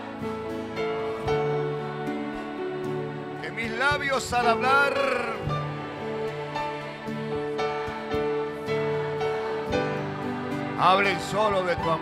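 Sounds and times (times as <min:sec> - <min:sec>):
band playing held chords: 0:00.0 - 0:12.0.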